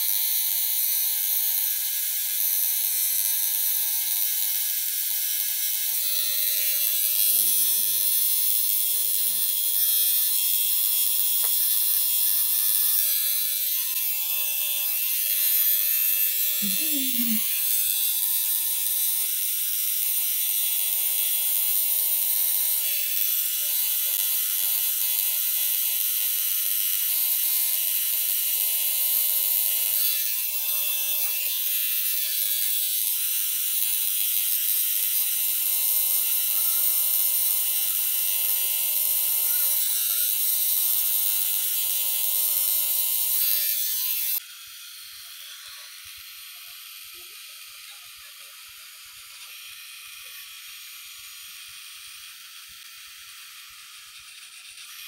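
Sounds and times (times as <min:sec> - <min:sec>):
tattoo machine buzzing: 0:00.0 - 0:55.0.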